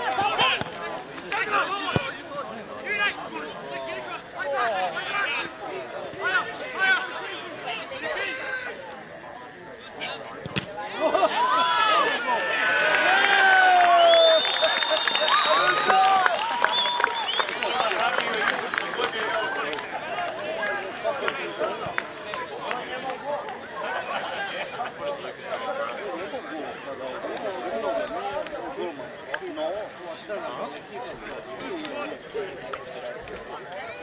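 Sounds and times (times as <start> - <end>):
crowd shouting and cheering: 0.0 - 34.0.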